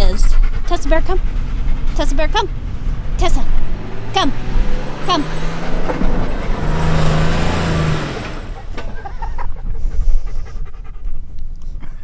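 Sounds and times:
dog panting: 0.0 - 11.8
truck engine pulling under load: 0.4 - 9.7.

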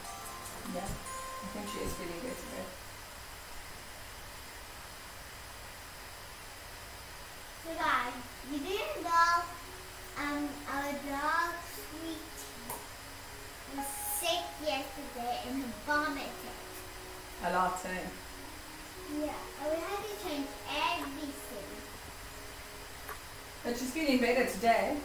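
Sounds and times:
girl talking and singing: 7.7 - 12.7, 13.7 - 16.7, 19.0 - 21.9.

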